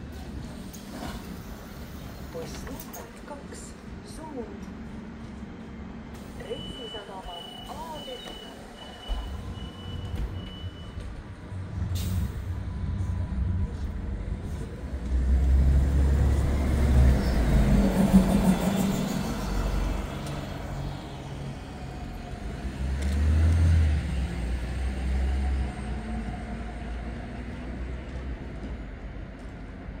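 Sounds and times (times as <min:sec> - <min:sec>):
bus engine rumble: 0:00.0 - 0:30.0
street traffic noise: 0:00.0 - 0:30.0.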